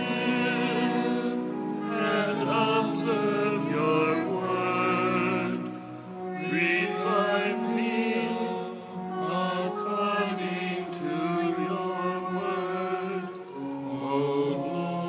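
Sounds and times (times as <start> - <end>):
choir singing slow chant: 0.0 - 15.0.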